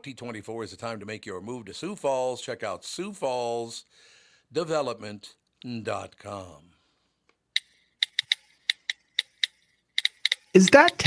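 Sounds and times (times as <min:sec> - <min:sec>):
phone keypad taps: 0:07.6 - 0:11.0.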